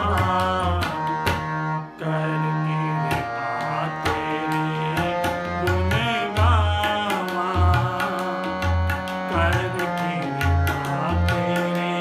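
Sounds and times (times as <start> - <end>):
harmonium melody: 0.0 - 12.0
tabla beat: 0.0 - 12.0.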